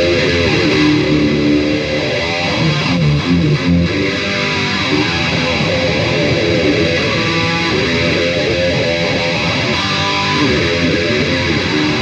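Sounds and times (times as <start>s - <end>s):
distorted electric guitar riffing: 0.0s - 12.0s.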